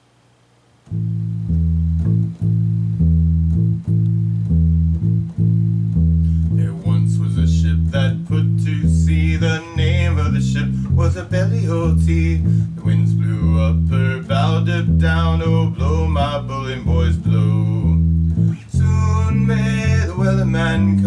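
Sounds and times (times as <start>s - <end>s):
electric bass guitar plucking: 0.9s - 21.0s
man singing: 6.5s - 21.0s.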